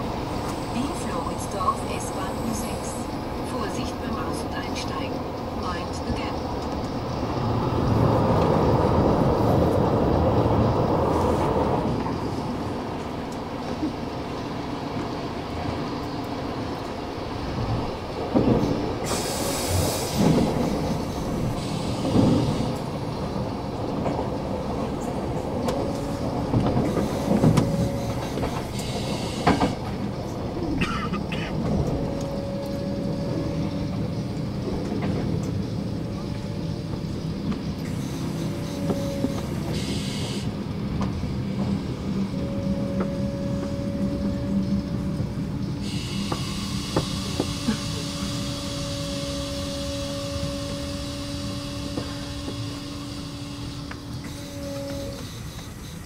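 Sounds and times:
train running on rails: 0.0s - 56.0s.

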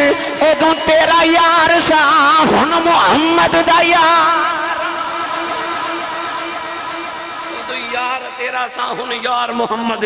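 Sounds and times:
man singing through loudspeaker: 0.0s - 10.0s.

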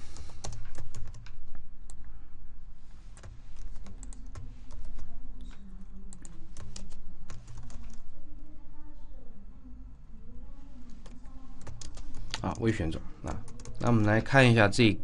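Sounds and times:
computer keyboard typing: 0.0s - 2.1s, 3.1s - 8.1s, 10.9s - 14.2s.

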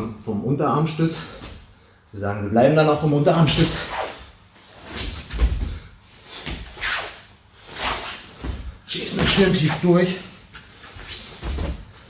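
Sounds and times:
clothing swishing: 3.6s - 12.0s
body thumping on mat: 5.3s - 5.8s, 11.0s - 12.0s.

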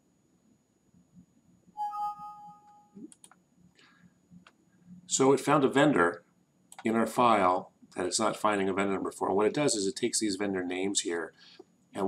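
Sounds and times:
two-note computer alert chime: 1.8s - 3.0s.

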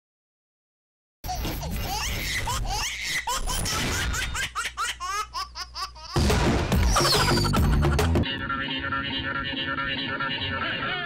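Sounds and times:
high-pitched laughter: 6.8s - 11.0s.

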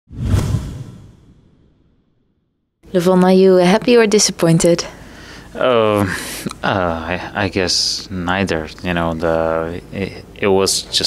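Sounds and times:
whoosh sound effect: 0.1s - 1.6s.

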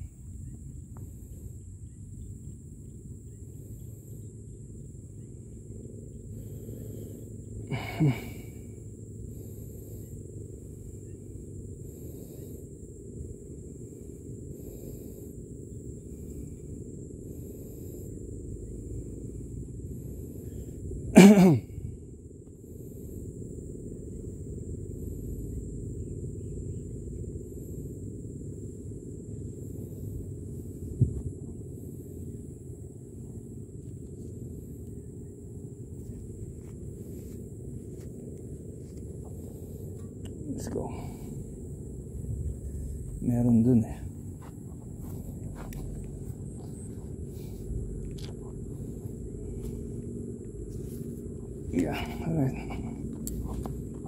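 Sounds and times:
faint high whine: 0.0s - 54.0s
person sneezing or coughing: 21.1s - 21.8s.

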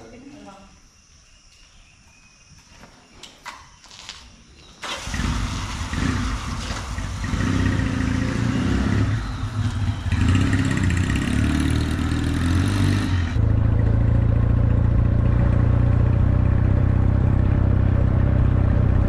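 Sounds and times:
small motorcycle engine revving: 4.8s - 13.4s.

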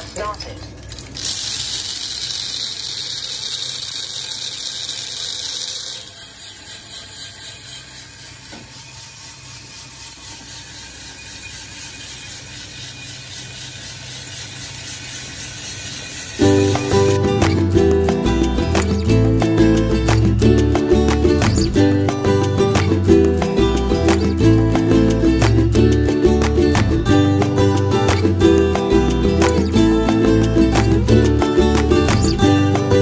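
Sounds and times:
coffee beans rattling in drum: 0.0s - 33.0s
music: 16.4s - 33.0s.

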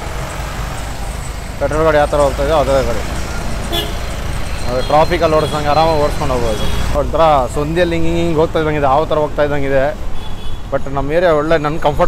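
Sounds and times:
wind and road noise: 0.0s - 12.0s
vehicle horn toot: 3.7s - 7.0s.

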